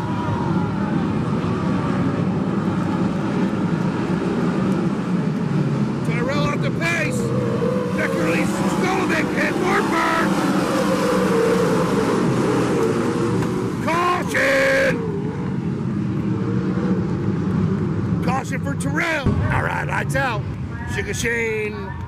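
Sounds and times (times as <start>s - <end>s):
racing car engines droning: 0.0s - 22.0s
people shouting: 13.8s - 15.1s.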